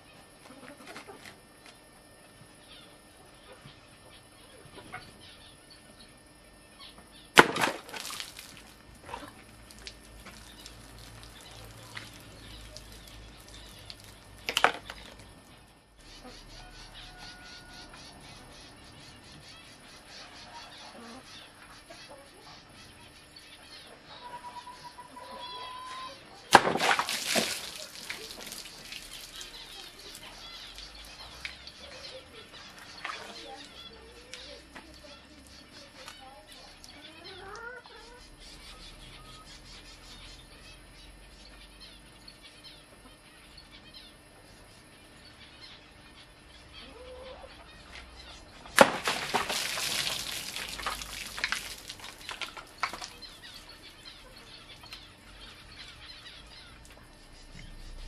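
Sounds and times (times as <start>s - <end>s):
knife slashing plastic bottles: 7.4s - 8.4s, 26.5s - 27.8s.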